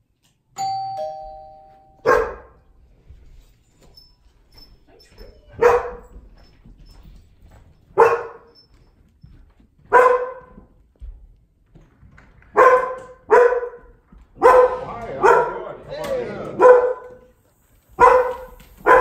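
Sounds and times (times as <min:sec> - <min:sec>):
dog barking: 0:02.0 - 0:02.6, 0:05.6 - 0:06.1, 0:08.0 - 0:08.6, 0:09.9 - 0:10.6, 0:12.5 - 0:17.3, 0:18.0 - 0:19.0.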